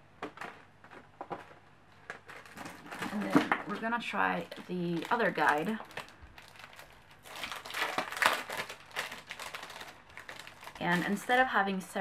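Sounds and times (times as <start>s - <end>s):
packaging rustling and clicking: 0.2s - 11.4s.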